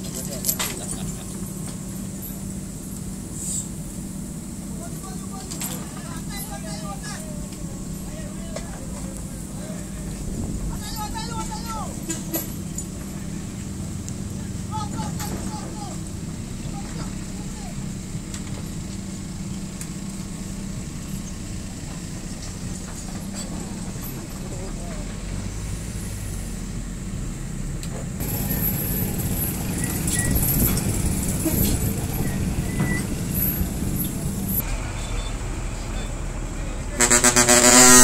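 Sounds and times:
excavator diesel engine running: 0:00.0 - 0:38.0
high hiss: 0:01.8 - 0:05.1
men calling: 0:04.7 - 0:18.0.

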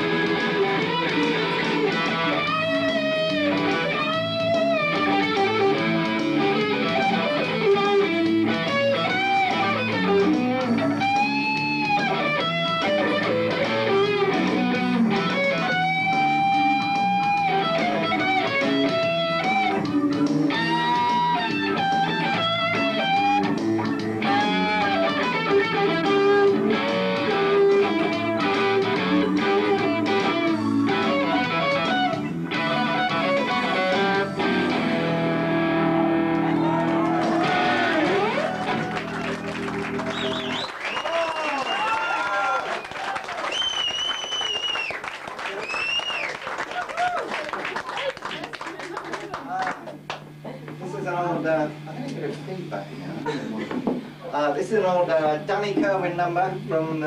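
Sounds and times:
electric guitar lead line: 0:00.0 - 0:41.0.

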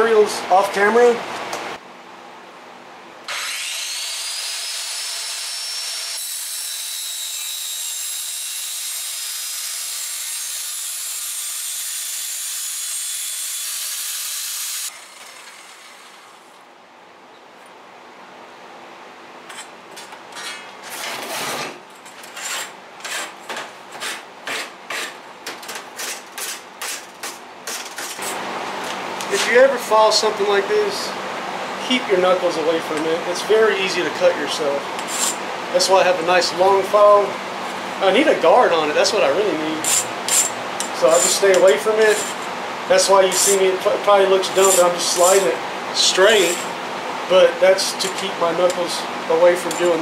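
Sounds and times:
angle grinder whining: 0:03.3 - 0:16.6
hand file scraping steel: 0:22.2 - 0:23.4, 0:35.0 - 0:35.4, 0:39.8 - 0:42.5, 0:43.3 - 0:43.6, 0:44.5 - 0:45.6, 0:46.3 - 0:46.7.

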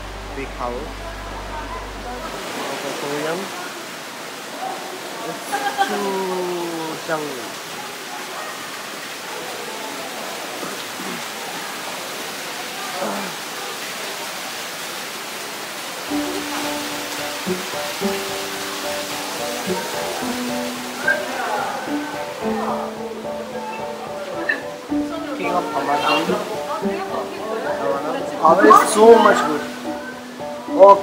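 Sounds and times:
waterfall rushing: 0:00.0 - 0:31.0
music with long held notes: 0:16.1 - 0:31.0.

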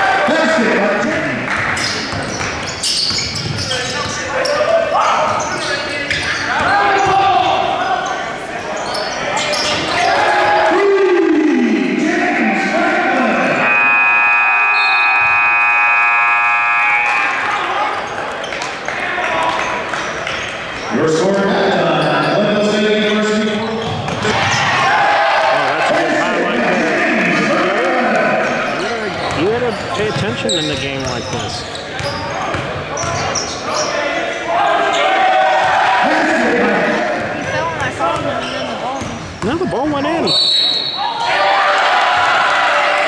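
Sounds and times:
scoreboard horn blast: 0:13.4 - 0:17.6.

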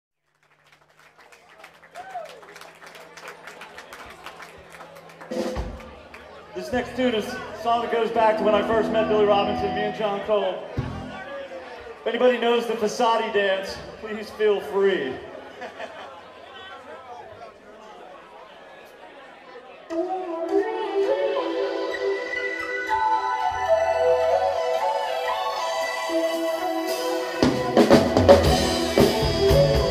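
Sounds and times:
audience clapping: 0:00.2 - 0:06.8
audience chatter murmur: 0:00.5 - 0:29.9
rock band playing held chords: 0:05.2 - 0:06.0, 0:06.7 - 0:11.3, 0:24.0 - 0:29.9.

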